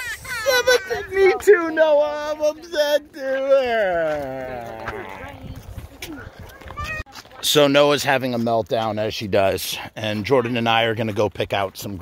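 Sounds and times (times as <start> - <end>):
girl whining and crying: 0.0 - 1.1
wind rumble on microphone: 4.2 - 7.0.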